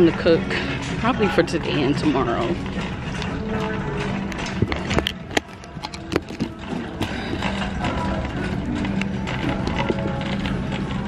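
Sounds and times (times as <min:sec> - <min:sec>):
shopping cart rattling: 0:00.0 - 0:11.0.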